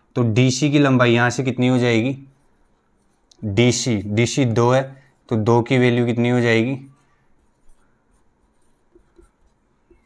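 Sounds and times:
marker pen scratching on whiteboard: 0:01.7 - 0:10.0.

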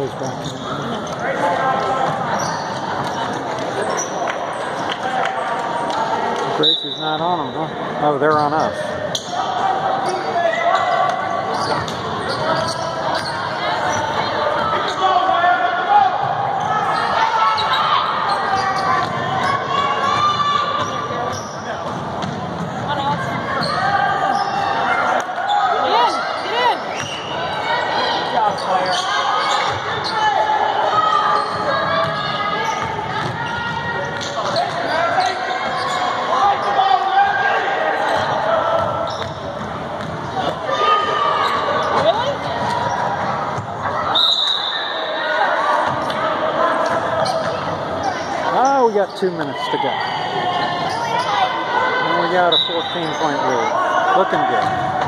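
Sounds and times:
voices and shouts: 0:00.0 - 0:21.9, 0:22.8 - 0:39.5, 0:40.2 - 0:55.0.

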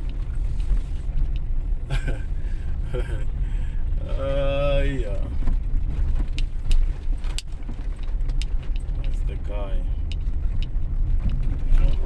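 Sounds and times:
car driving rumble: 0:00.0 - 0:12.0.

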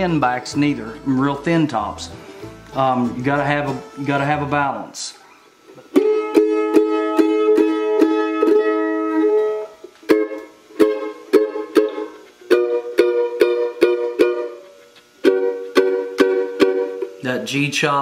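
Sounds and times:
mandolin strumming chords: 0:00.0 - 0:18.0.

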